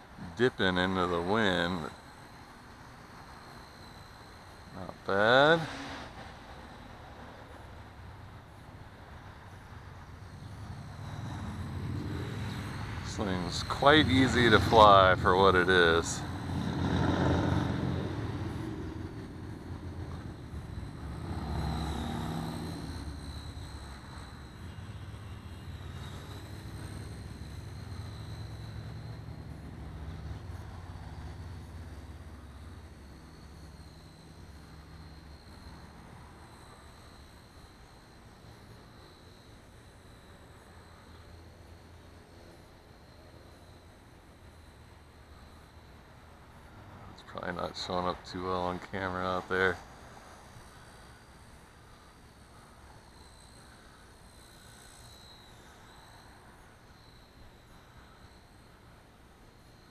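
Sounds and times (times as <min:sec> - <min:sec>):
rc helicopter whine: 0:00.0 - 0:59.9.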